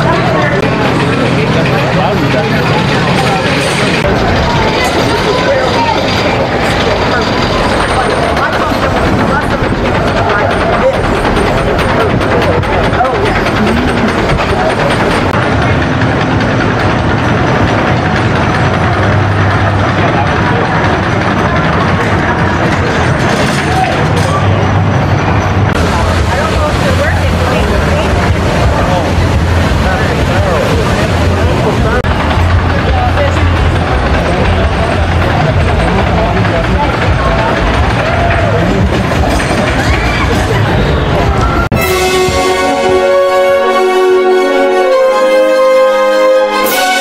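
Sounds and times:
coaster cars rumbling on wood: 0:00.0 - 0:47.0
people's voices: 0:00.0 - 0:47.0.

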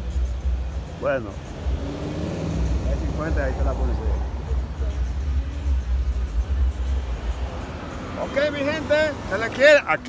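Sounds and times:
car driving rumble from inside: 0:00.0 - 0:09.4.

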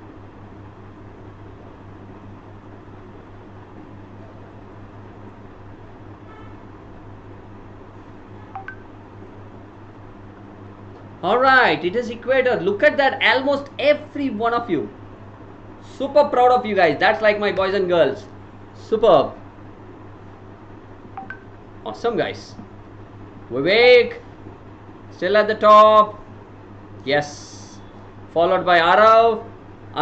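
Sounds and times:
steady low hum: 0:00.0 - 0:30.0
short electronic beeps: 0:08.6 - 0:08.8, 0:21.2 - 0:21.5.

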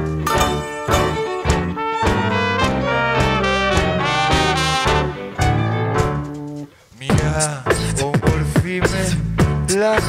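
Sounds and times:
band playing accented chords: 0:00.0 - 0:10.0.

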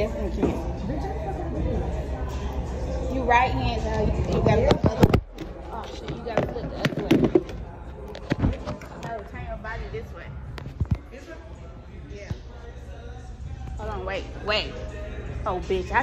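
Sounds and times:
faint background voices: 0:00.0 - 0:16.0.

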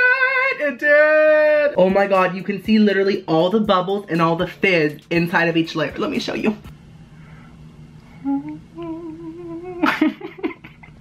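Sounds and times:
man vocalizing held note: 0:08.2 - 0:09.8.

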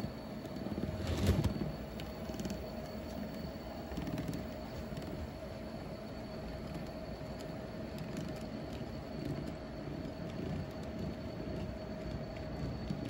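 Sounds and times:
steady hum: 0:00.0 - 0:13.0.

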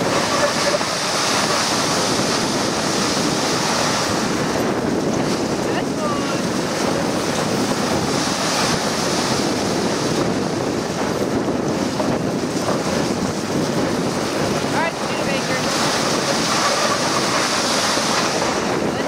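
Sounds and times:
wind on microphone: 0:00.0 - 0:19.0
sled runners hissing on snow: 0:14.4 - 0:18.8.

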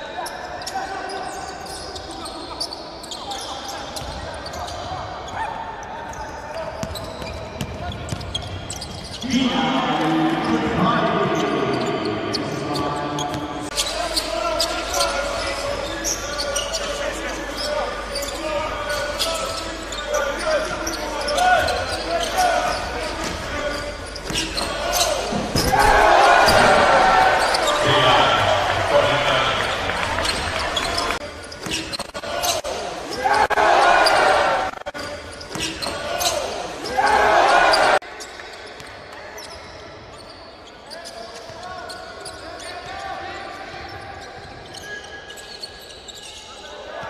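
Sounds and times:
basketball bouncing on court: 0:06.7 - 0:09.2
loud voices: 0:09.2 - 0:31.2, 0:32.0 - 0:35.0, 0:35.8 - 0:38.0.

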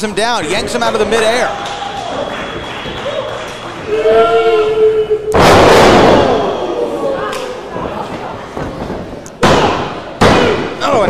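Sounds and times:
wrestler crashing onto ring: 0:05.4 - 0:06.8.

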